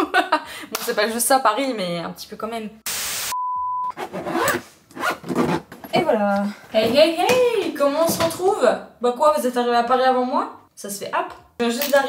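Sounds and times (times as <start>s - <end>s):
suitcase zipper being pulled: 3.9s - 5.7s.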